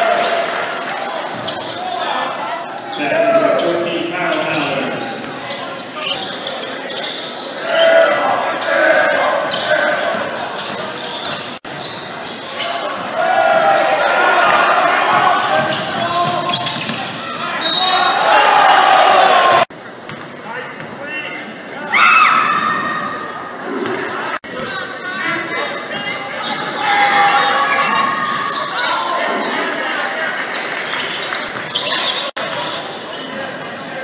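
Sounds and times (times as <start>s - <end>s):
crowd cheering and shouting: 0.0s - 5.2s, 12.6s - 19.7s, 21.8s - 30.8s
crowd chatter: 0.0s - 22.0s, 22.6s - 34.0s
basketball bouncing on court: 14.5s - 17.2s, 20.0s - 21.0s.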